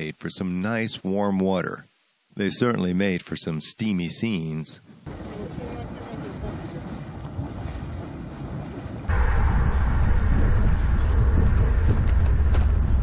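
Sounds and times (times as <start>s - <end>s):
geyser boiling and splashing: 5.0s - 9.1s
wind buffeting microphone: 5.0s - 13.0s.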